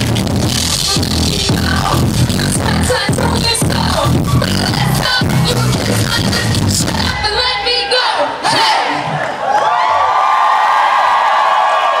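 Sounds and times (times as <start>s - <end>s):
band music: 0.0s - 9.0s
concert crowd cheering and screaming: 7.0s - 12.0s.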